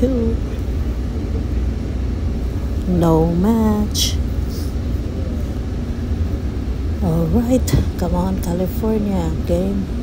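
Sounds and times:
train rumble inside carriage: 0.0 - 10.0.

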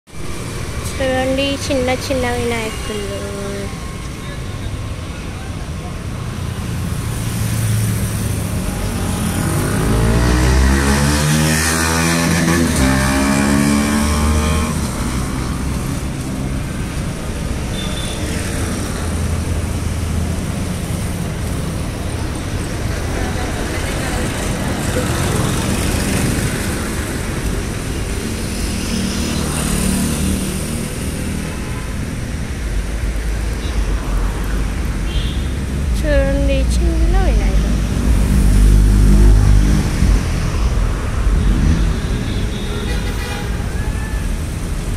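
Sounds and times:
street traffic rumbling: 0.0 - 44.9
vehicle passing close: 6.9 - 16.8, 35.5 - 42.3.

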